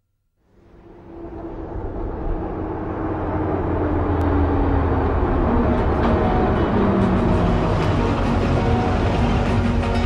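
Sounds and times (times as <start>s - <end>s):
vehicle engine and road noise: 0.4s - 10.0s.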